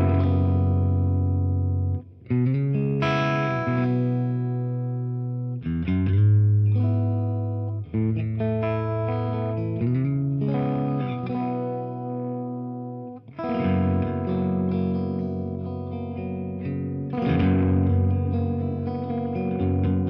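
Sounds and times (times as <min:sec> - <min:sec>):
electric guitar chords: 0:00.0 - 0:20.0.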